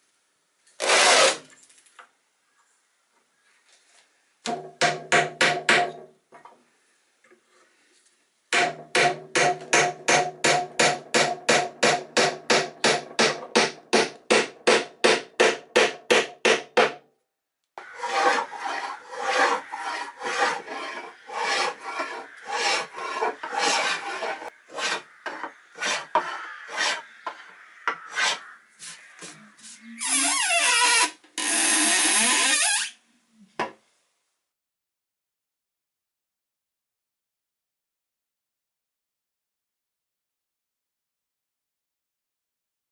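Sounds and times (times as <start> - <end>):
hand plane shaving wood: 17.8 - 27.1, 28.1 - 29.8
steady scraping: 17.8 - 27.4.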